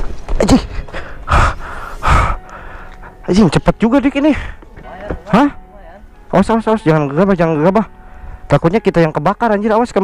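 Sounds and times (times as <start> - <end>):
person breathing out hard: 0.8 - 3.0.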